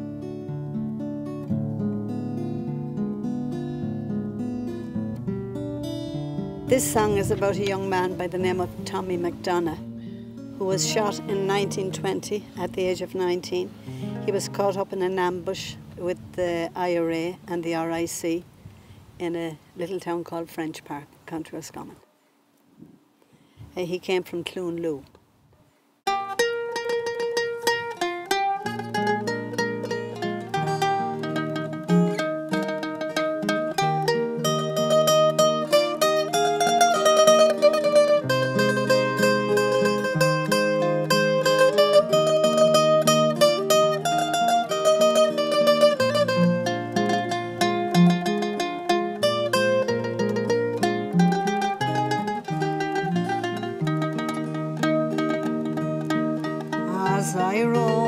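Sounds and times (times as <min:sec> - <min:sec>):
acoustic guitar chords: 0:00.0 - 0:18.2, 0:26.1 - 0:58.0
mandolin melody: 0:00.0 - 0:18.4, 0:26.1 - 0:58.0.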